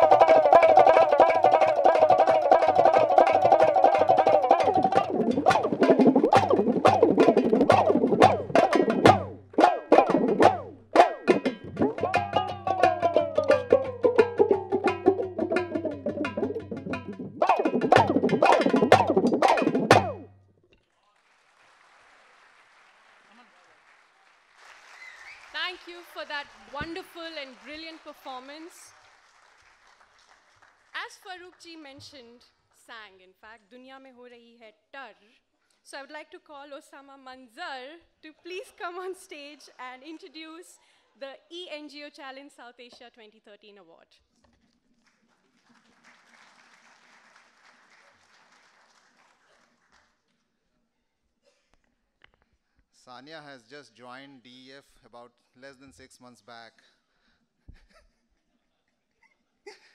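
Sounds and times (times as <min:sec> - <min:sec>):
faint applause: 0:00.0 - 0:10.6, 0:11.8 - 0:16.6, 0:21.0 - 0:31.0, 0:45.0 - 0:50.4.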